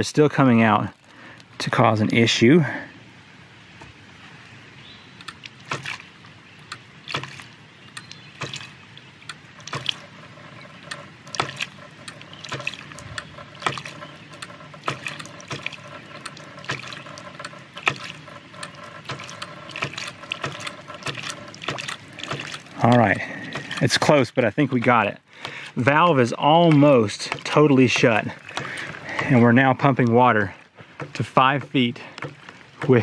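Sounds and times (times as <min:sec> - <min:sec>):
water spurting: 0:00.0 - 0:33.0
pump valve clacking shut: 0:05.2 - 0:33.0.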